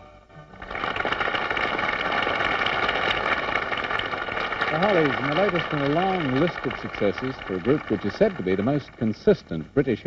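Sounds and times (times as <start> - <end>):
audience applauding: 0.5 - 9.5
man speaking: 4.7 - 10.0.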